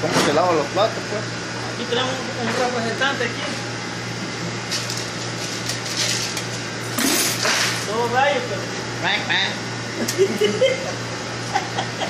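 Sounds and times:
kitchen machine hum: 0.0s - 12.0s.

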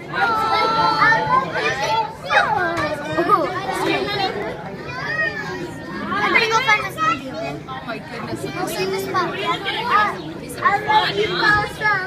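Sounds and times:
chatter of onlookers: 0.0s - 12.0s
children talking and exclaiming: 0.0s - 12.0s.

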